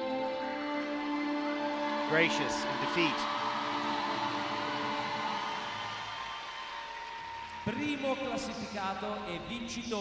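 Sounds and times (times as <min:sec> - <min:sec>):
crowd noise in arena: 0:00.0 - 0:10.0.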